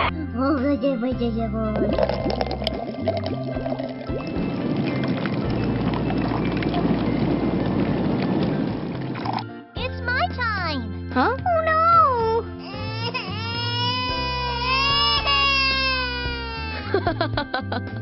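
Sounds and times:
children's background music: 0.0 - 18.0.

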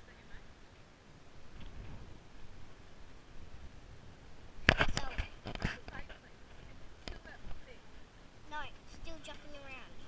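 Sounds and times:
child's voice: 8.5 - 10.0.

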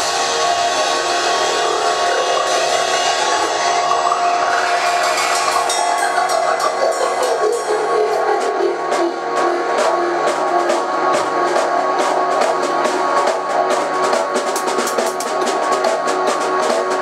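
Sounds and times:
sustained synth tones: 0.0 - 13.9
drum and bass track: 0.0 - 17.0
drum kit playing: 0.0 - 17.0
snare and cymbal strikes: 9.8 - 17.0.

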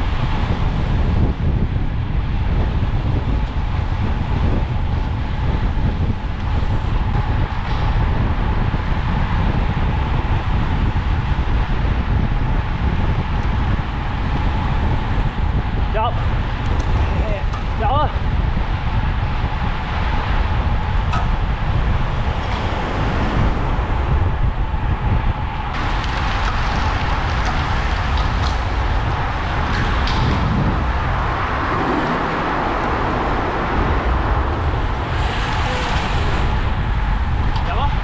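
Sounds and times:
bicycle tyre noise: 0.0 - 38.0
wind on microphone: 0.0 - 38.0.

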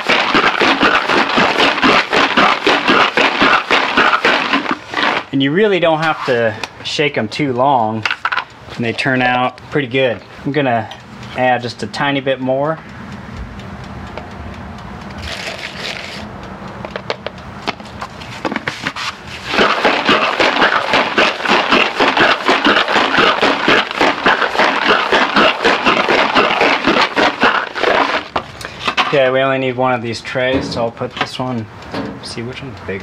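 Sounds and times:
bullets rattling in plastic tub: 0.0 - 5.3, 8.1 - 8.5, 19.4 - 29.2.

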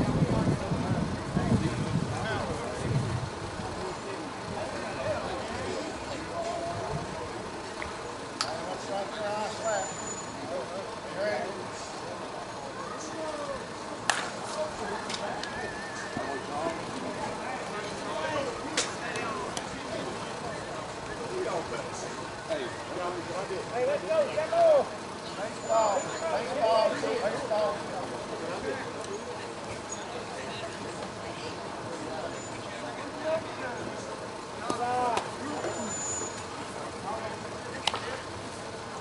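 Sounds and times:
people calling across a field: 2.2 - 39.0.

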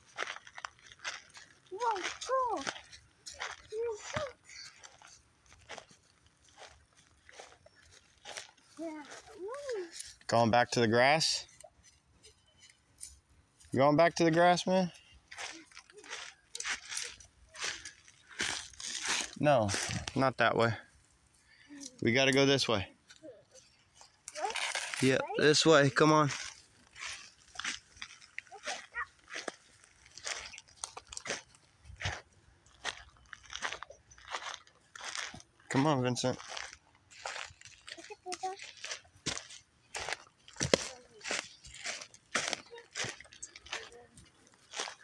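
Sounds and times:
footsteps crunching on dry ground: 0.0 - 10.4, 11.4 - 21.3, 22.9 - 45.0
rustle of dry pine branches: 23.6 - 31.5.

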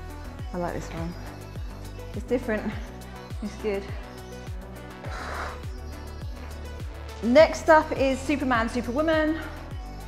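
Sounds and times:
music with kick-drum beat: 0.0 - 10.0.

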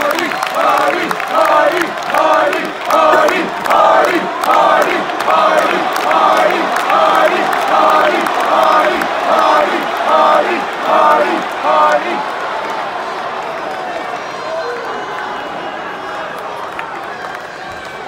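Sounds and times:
crowd chanting in unison: 0.0 - 16.6.

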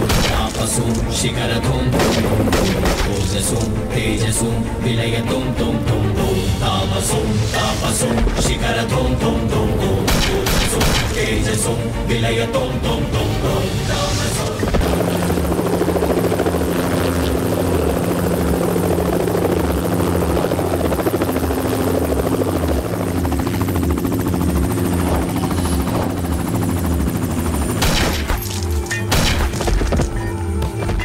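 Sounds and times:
helicopter engine whine: 0.0 - 30.6
helicopter rotor chopping: 0.0 - 31.0.

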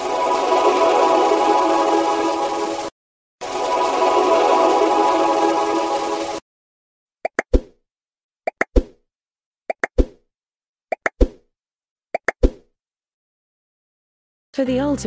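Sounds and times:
plop sound effect with clicks: 8.5 - 8.9, 9.7 - 10.2, 12.2 - 12.6.

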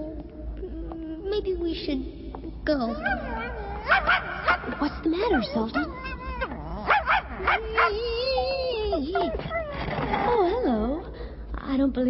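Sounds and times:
cartoon dog whining and yipping: 2.9 - 9.8.

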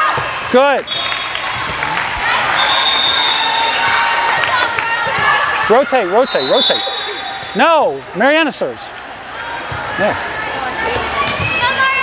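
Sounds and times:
ball and court sounds: 0.0 - 8.2, 9.2 - 12.0
voices in a gym: 0.0 - 12.0
referee's whistle: 0.9 - 1.4, 2.5 - 3.9, 6.1 - 7.8.

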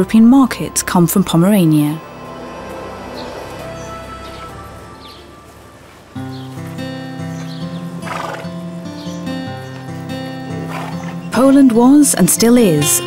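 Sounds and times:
horse whinnying: 8.0 - 8.6, 10.6 - 11.3.

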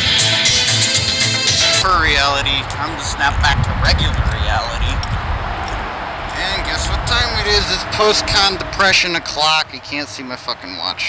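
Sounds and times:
people talking: 1.6 - 5.0, 6.3 - 11.0
low rumble: 2.4 - 8.5.

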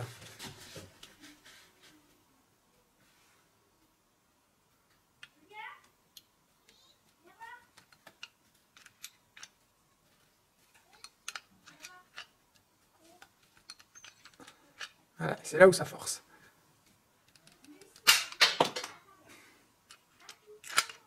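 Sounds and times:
hand riveter clicks and ticks: 10.9 - 15.0, 19.9 - 21.0.

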